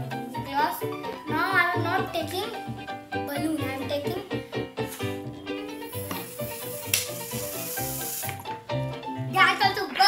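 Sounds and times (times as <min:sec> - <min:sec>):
background music melody: 0:00.0 - 0:10.0
blowing into plastic bottle: 0:05.9 - 0:08.4.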